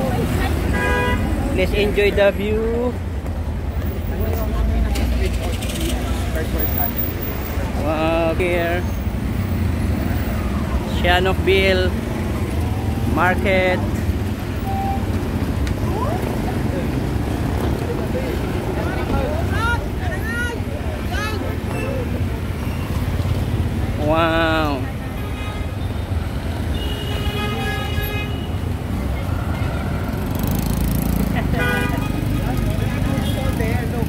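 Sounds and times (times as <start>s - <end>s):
cars and motorbikes passing: 0.0s - 34.0s
traffic rumble: 0.0s - 34.0s
vehicle horn: 0.7s - 1.4s, 14.6s - 15.1s, 26.6s - 28.6s, 31.5s - 32.2s
voices calling out: 3.8s - 27.1s.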